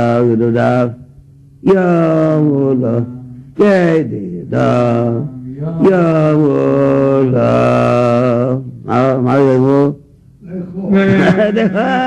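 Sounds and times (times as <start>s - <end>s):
man chanting low: 0.0s - 10.0s.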